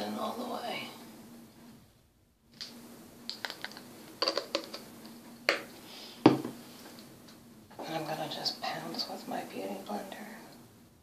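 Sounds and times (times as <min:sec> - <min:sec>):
makeup items clicking and tapping: 0:03.3 - 0:04.8.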